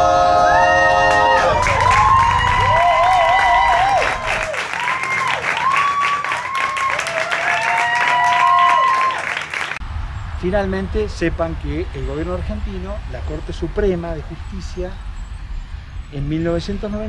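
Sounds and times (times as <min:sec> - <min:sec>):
audience clapping and cheering: 0:00.0 - 0:09.8
whoops: 0:00.0 - 0:09.8.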